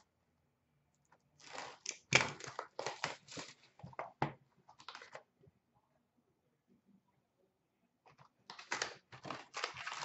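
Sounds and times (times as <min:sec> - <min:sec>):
wrapper tearing and crinkling: 0:01.4 - 0:03.6, 0:08.5 - 0:10.0.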